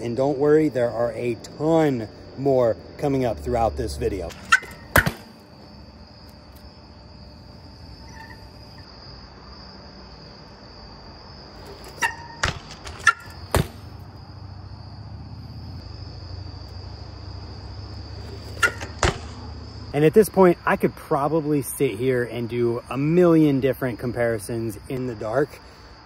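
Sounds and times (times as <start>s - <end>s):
low outdoor rumble: 0.0s - 8.9s, 10.9s - 23.0s
insects chirring: 0.0s - 26.0s.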